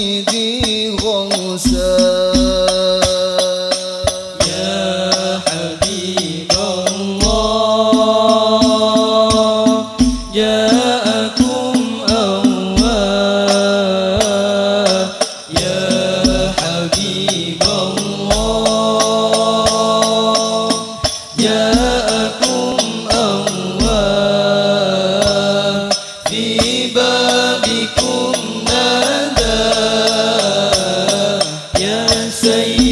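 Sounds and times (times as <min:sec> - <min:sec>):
frame drums beating: 0:00.0 - 0:32.9
male voices chanting in unison: 0:00.0 - 0:32.9.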